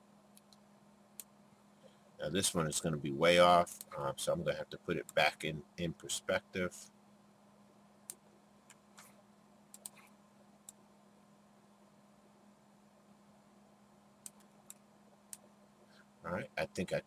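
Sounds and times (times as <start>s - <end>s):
faint low hum: 0.0s - 17.0s
computer mouse clicks: 0.3s - 0.6s, 9.7s - 10.8s, 14.2s - 15.5s.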